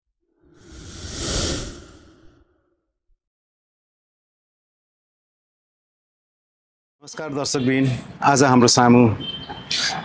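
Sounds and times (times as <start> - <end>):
whoosh transition effect: 0.4 - 2.6.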